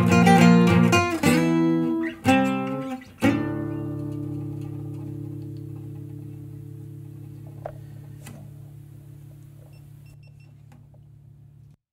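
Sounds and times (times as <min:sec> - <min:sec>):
acoustic guitar chord ringing: 0:00.0 - 0:09.4.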